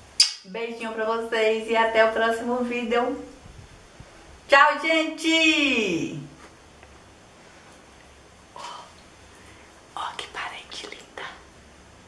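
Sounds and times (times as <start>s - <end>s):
woman whispering: 8.6s - 9.0s, 10.0s - 11.5s.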